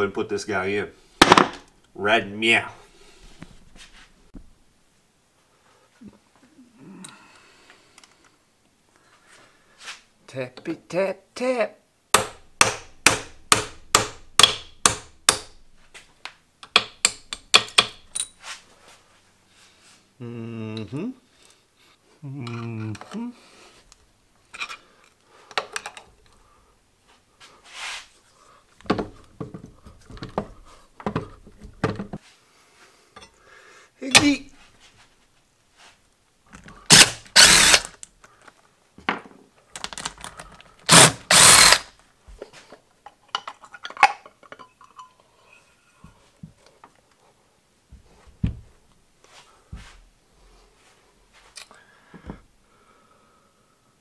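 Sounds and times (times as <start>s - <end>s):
electric motor running: 36.9s - 37.9s, 40.9s - 41.9s.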